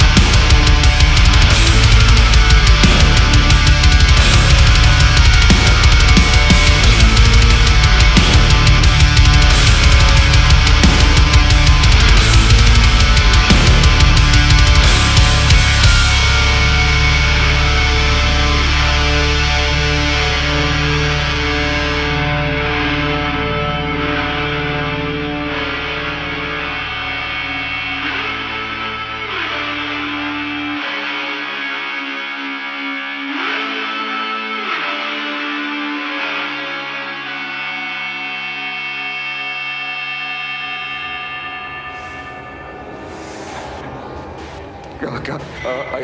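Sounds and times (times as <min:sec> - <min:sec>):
deep bass: 0:00.0 - 0:30.5
distorted electric guitar: 0:00.0 - 0:46.0.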